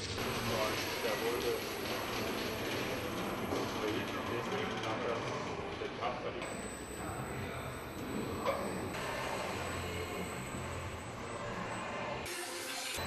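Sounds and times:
warehouse machinery running: 0.0s - 13.0s
indistinct voices talking: 0.2s - 12.3s.

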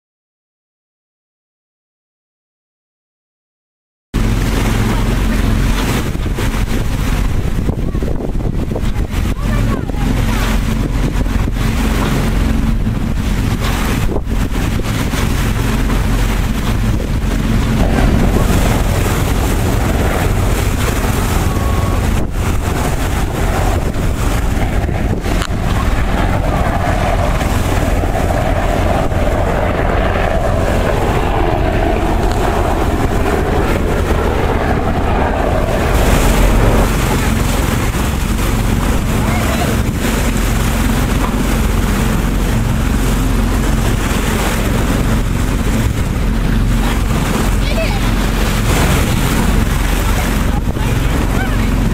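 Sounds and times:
boat motor running: 4.2s - 51.9s
wind buffeting microphone: 4.2s - 51.9s.

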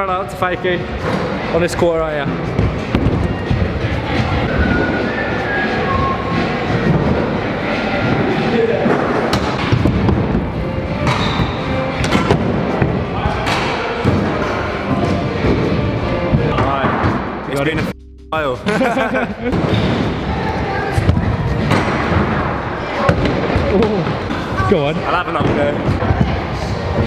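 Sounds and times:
background music: 0.0s - 27.0s.

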